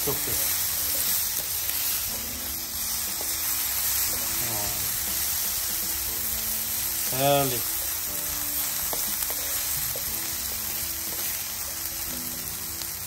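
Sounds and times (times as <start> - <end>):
bacon and onion sizzling: 0.0 - 13.0
wooden spatula stirring: 7.9 - 10.4.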